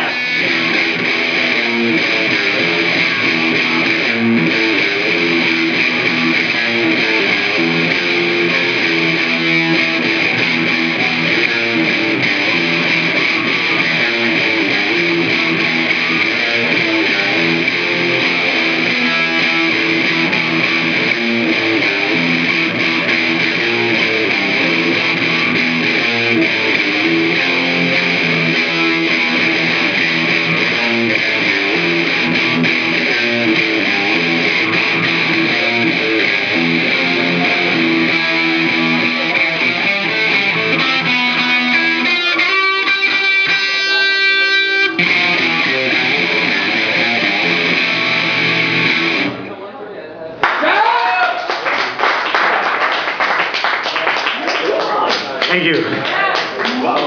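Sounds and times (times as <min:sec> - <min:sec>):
electric guitar riffs: 0:00.0 - 0:49.6.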